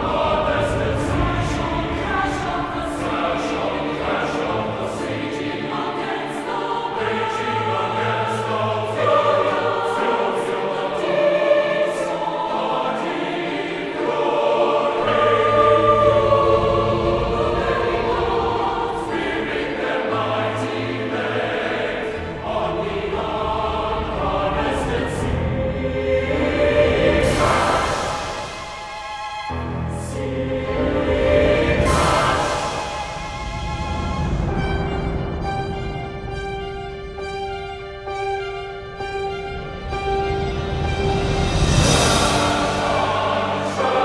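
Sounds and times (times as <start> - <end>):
choir singing: 0.0 - 44.0.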